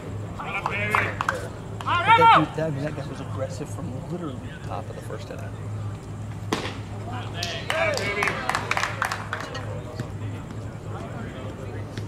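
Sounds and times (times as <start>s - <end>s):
voices: 0.0s - 12.0s
baseball hitting glove pop: 6.5s - 6.9s.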